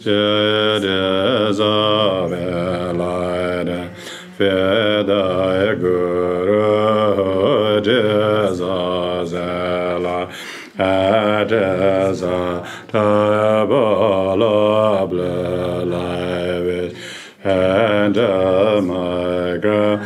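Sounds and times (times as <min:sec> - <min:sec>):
man chanting a prayer: 0:00.0 - 0:20.0.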